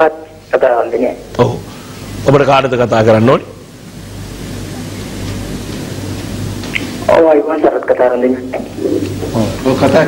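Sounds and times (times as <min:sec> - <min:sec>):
low electrical hum: 0:00.0 - 0:10.0
steady hiss: 0:00.0 - 0:10.0.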